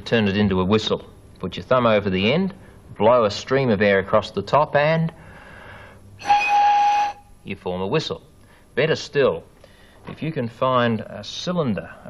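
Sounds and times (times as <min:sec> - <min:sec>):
breathy air noise: 0:05.1 - 0:07.2, 0:08.4 - 0:08.8, 0:09.6 - 0:10.1
pen casing whistle note: 0:06.2 - 0:07.3.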